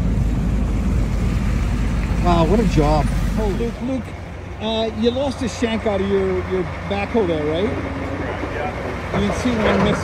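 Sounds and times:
road noise: 0.0s - 10.0s
truck engine rumble: 0.0s - 10.0s.

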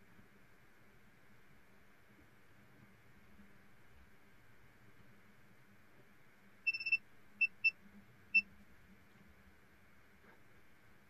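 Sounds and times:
faint steady hum: 0.0s - 11.0s
high-pitched electronic beeps: 6.7s - 7.7s.

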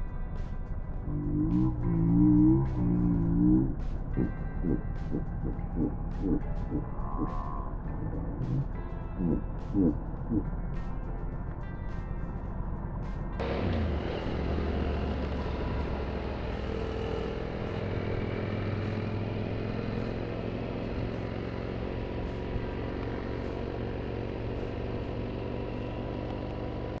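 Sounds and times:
motorcycle engines running: 0.0s - 27.0s.

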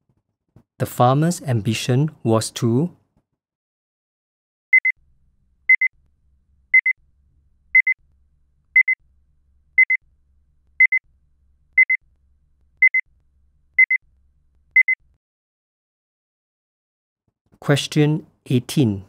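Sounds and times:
electronic timer double beep: 8.8s - 9.0s.

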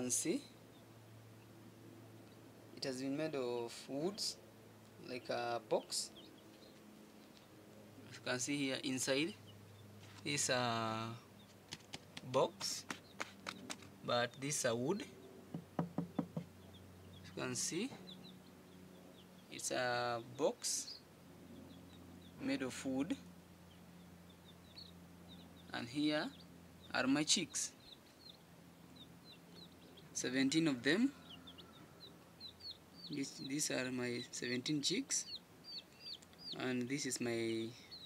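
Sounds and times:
chicks peeping: 0.0s - 38.0s
knuckles knocking on wood: 15.5s - 16.5s.

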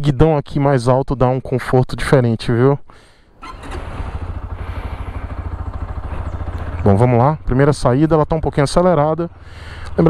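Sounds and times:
motorcycle engine idling: 3.3s - 10.0s.

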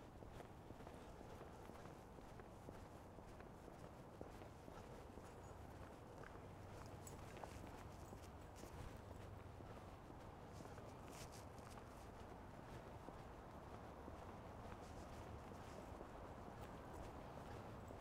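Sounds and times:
footsteps on sidewalk: 0.0s - 18.0s.

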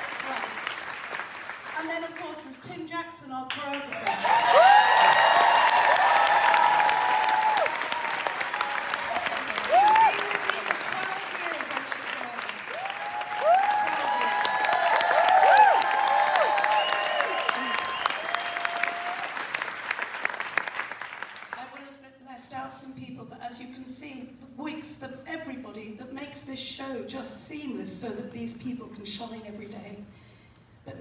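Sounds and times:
audience clapping: 0.0s - 2.3s, 3.5s - 21.7s
high whoops and cheers: 4.0s - 10.6s, 12.7s - 19.5s.

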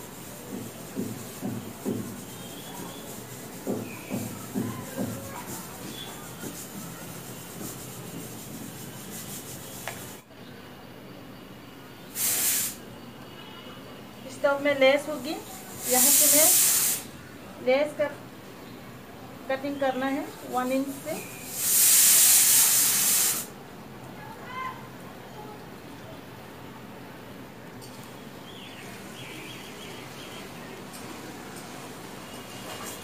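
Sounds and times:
loud steady hiss: 0.0s - 10.3s, 11.1s - 13.2s, 14.0s - 17.7s, 19.5s - 23.9s.

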